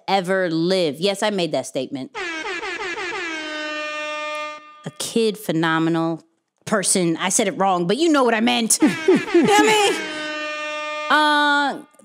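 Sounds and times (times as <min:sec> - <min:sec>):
horn blast sliding down in pitch: 0:02.2 - 0:04.9, 0:08.9 - 0:11.5.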